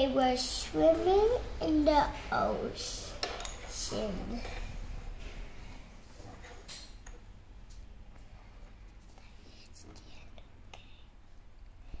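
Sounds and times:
person whispering: 9.2s - 11.1s.

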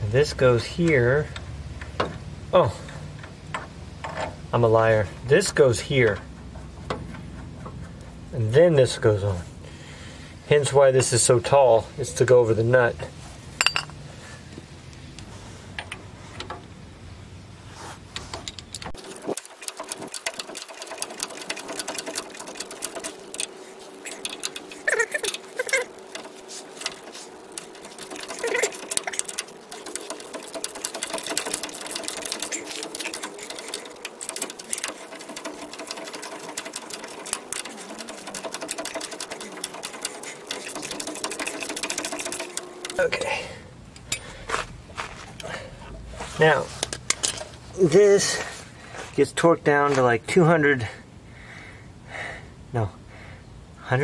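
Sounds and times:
tool handling: 13.6s - 13.9s, 43.9s - 47.6s
socket ratchet clicking: 18.5s - 43.0s.

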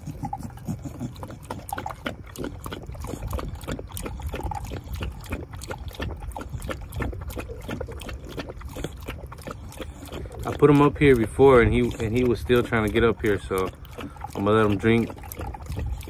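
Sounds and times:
puppy lapping water: 0.0s - 16.0s.

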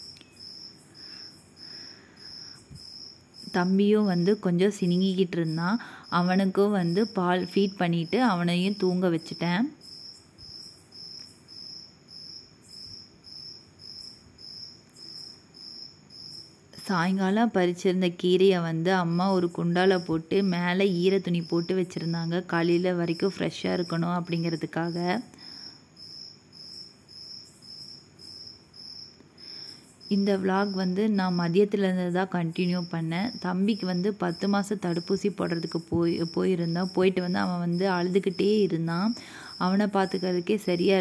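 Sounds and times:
cricket chirping: 0.0s - 41.0s
faint background hiss: 0.0s - 41.0s.

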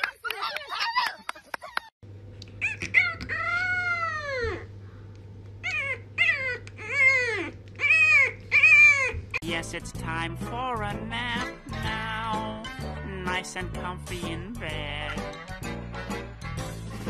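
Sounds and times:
steady low hum: 2.1s - 17.0s
puppy howling: 2.6s - 4.7s, 5.6s - 9.4s.

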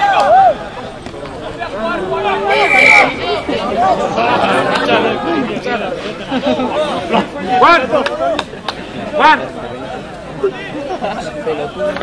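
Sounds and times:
many voices calling out: 0.0s - 12.0s.

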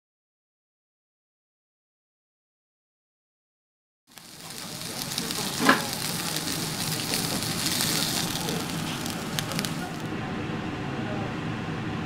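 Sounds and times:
patty sizzling on grill pan: 4.1s - 10.1s
sharp crackles: 4.1s - 10.1s.

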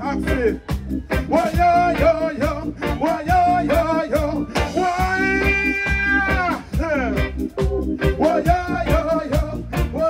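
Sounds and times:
live reggae band playing: 0.0s - 10.0s.

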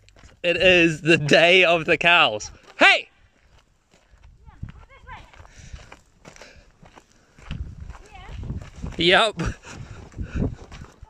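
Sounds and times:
cattle hooves thudding on dirt: 3.4s - 11.0s.

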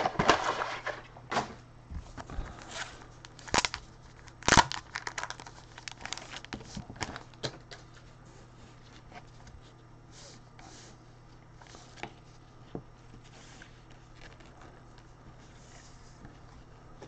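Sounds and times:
packaging crinkling: 2.5s - 8.0s.

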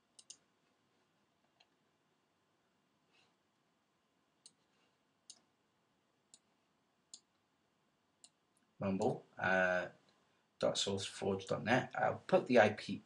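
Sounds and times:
computer mouse clicks: 0.1s - 0.4s, 4.4s - 5.5s.

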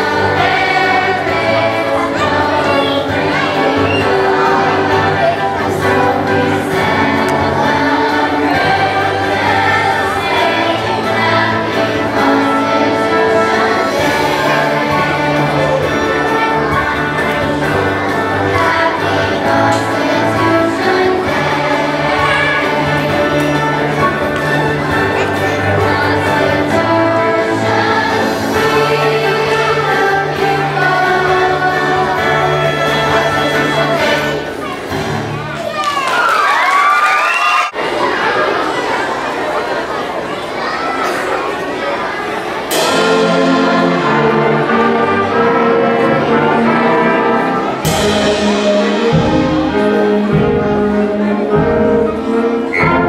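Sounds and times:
choir singing held notes: 0.0s - 35.5s, 41.2s - 53.0s
orchestral music with brass: 0.0s - 35.6s, 42.7s - 53.0s.

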